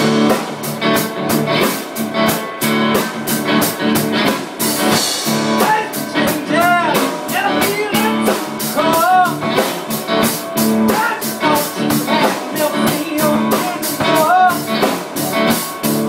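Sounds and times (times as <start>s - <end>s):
blues-rock band music: 0.0s - 16.0s
guitar line bending: 0.0s - 16.0s.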